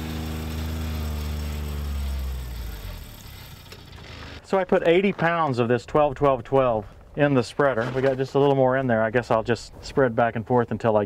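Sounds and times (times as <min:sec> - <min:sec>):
utility vehicle engine running: 0:00.0 - 0:04.4
spreader casting fertilizer: 0:00.0 - 0:05.6.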